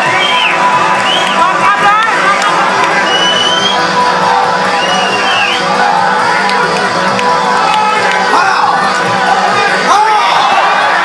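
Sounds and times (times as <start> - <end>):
crowd noise: 0.0 - 11.0.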